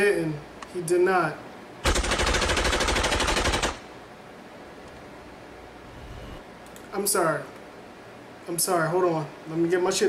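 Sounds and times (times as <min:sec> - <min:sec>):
automatic rifle fire: 0:01.8 - 0:03.9.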